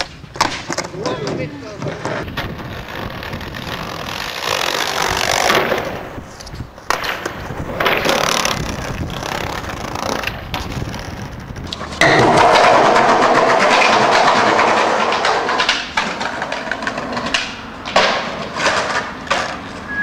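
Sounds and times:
skateboard tail clicks: 0.0s - 19.9s
skateboard wheels rolling on concrete: 0.0s - 20.0s.

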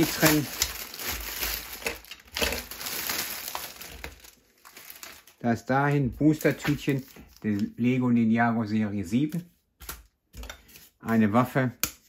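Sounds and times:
plastic bag crinkling: 0.0s - 7.8s.

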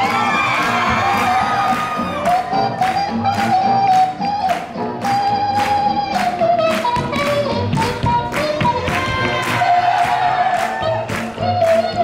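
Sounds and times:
shoes tapping on dance floor: 2.3s - 12.0s.

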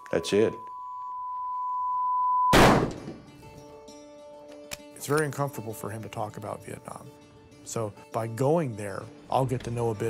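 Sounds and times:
rifle shot: 2.5s - 3.2s.

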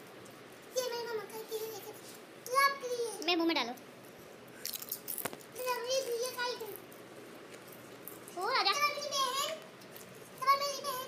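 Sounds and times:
boy calling out: 10.4s - 11.0s.

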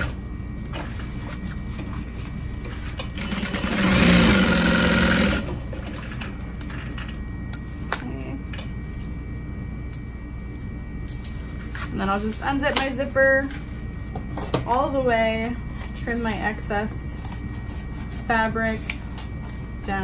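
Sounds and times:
sewing machine stitching: 3.2s - 5.5s.

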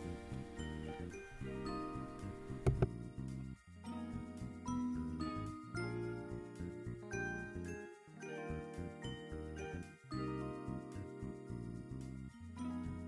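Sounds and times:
steady bass line: 0.0s - 3.6s
bell-like melody: 0.0s - 13.0s.

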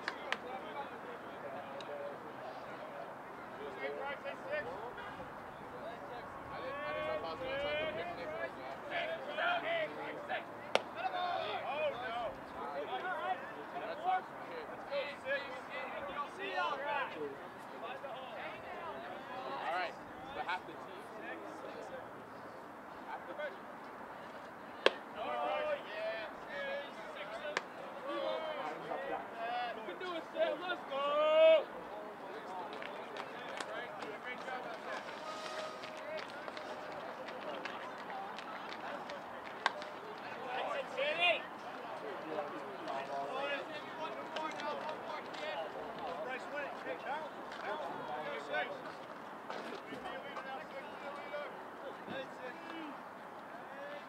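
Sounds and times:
people calling and chattering: 0.0s - 54.0s.

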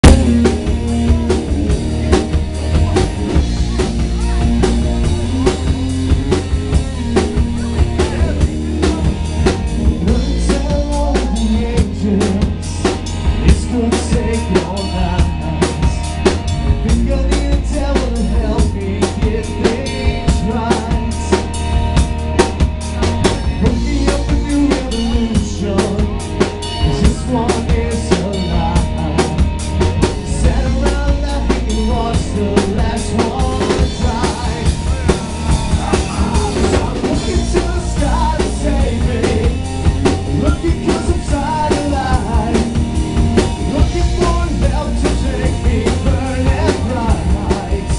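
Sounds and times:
rock band playing loud: 0.0s - 47.9s.

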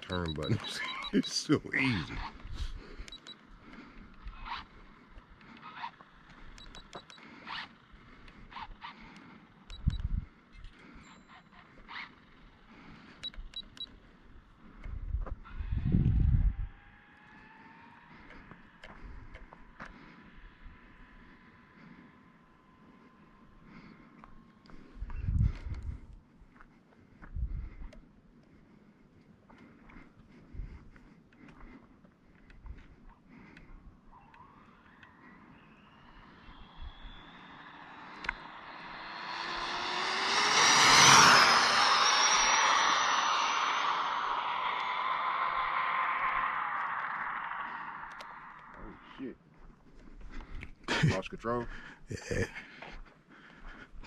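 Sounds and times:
wind noise: 9.8s - 10.3s, 14.9s - 16.8s, 25.0s - 26.1s, 27.3s - 27.8s
electric motor whining: 34.3s - 48.7s.

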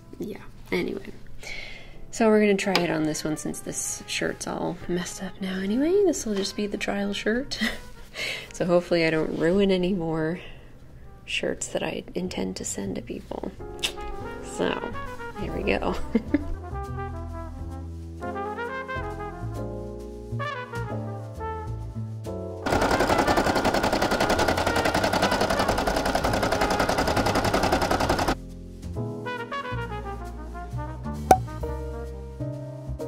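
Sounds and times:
background music: 0.0s - 33.0s
embroidery machine rattling: 22.6s - 28.4s.

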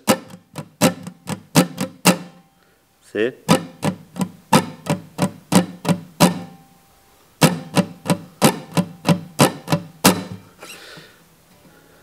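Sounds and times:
muted acoustic guitar strums: 0.0s - 2.7s, 3.3s - 11.9s.

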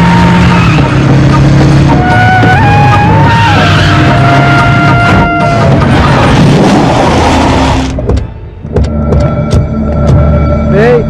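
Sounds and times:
background music: 0.0s - 11.0s
car engine: 0.0s - 11.0s.

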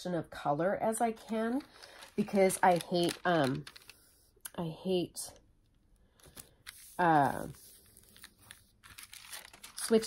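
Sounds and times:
paper crinkling: 1.2s - 4.3s, 6.2s - 10.0s.

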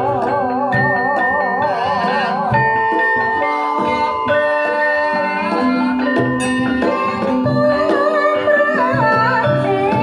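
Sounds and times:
metallophone and gong-chime notes: 0.0s - 10.0s
person singing: 0.0s - 10.0s.

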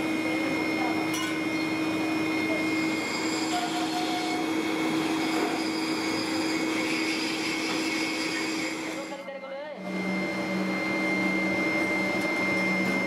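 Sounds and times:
electric air blower rushing: 0.0s - 9.2s.

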